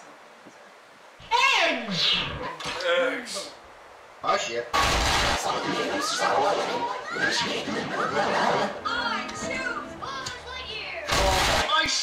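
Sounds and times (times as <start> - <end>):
character voices: 1.2 - 3.6, 4.4 - 12.0
film music: 8.0 - 10.8.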